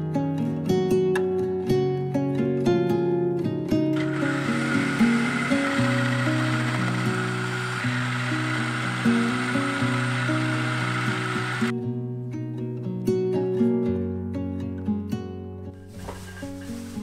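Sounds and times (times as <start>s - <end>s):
acoustic guitar music: 0.0s - 17.0s
food processor grinding whirr: 4.0s - 11.7s.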